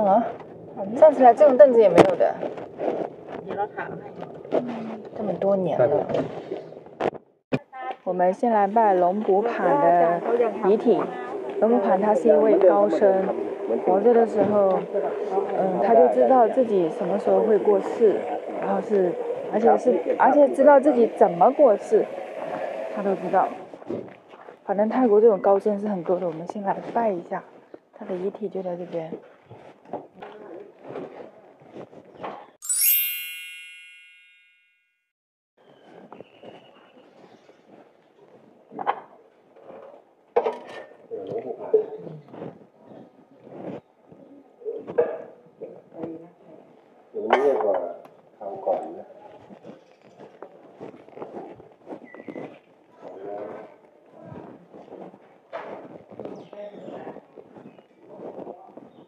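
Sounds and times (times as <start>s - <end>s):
bright bell-like chime: 32.6s - 35.0s.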